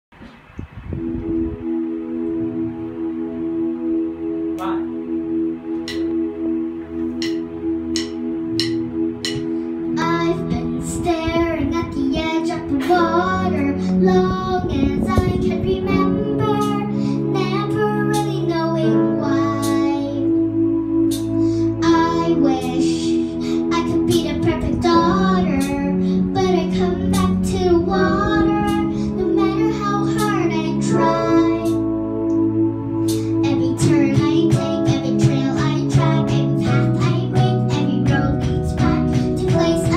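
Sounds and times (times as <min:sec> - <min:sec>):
electric keyboard chords: 0:00.1 - 0:39.9
instrumental accompaniment held notes: 0:00.3 - 0:39.9
girl singing into microphone: 0:09.3 - 0:32.3, 0:33.0 - 0:39.9.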